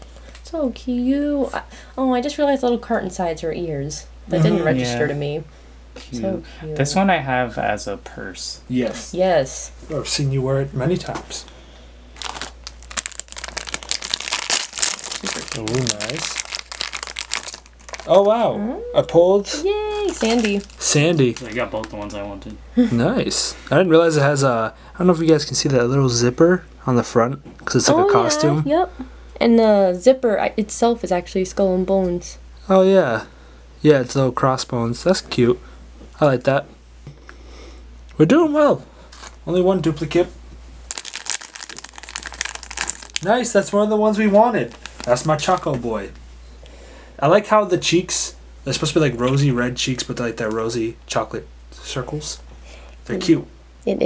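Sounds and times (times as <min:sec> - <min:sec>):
foil wrapper crinkling: 0:12.2 - 0:18.3, 0:19.9 - 0:22.3, 0:39.1 - 0:39.4, 0:40.9 - 0:43.6, 0:44.2 - 0:45.8.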